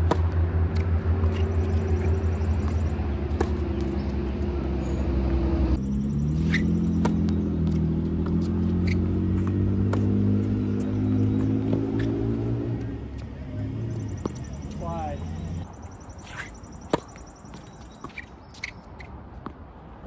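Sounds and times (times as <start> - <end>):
tennis ball being struck: 9.4 - 10.9.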